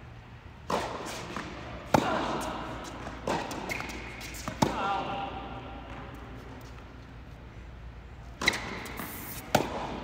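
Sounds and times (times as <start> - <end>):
tennis ball struck with racket: 0.6 - 4.9, 8.4 - 10.0.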